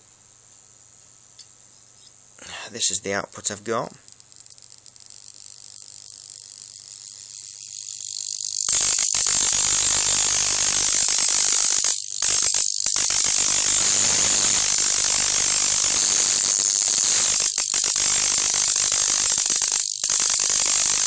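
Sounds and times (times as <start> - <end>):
low mains hum: 0.0 - 8.3
electric arc buzzing: 0.6 - 21.0.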